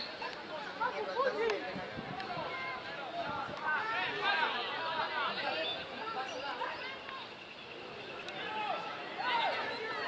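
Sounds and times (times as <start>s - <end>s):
people talking and calling out: 0.0s - 10.0s.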